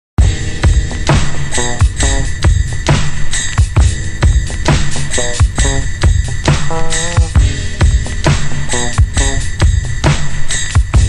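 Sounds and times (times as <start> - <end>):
instrumental hip-hop beat: 0.2 - 11.0
pitched melodic phrase: 6.7 - 7.4.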